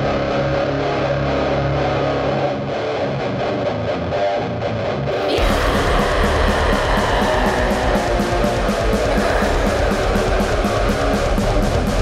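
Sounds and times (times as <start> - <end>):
metal band playing: 5.0 - 12.0.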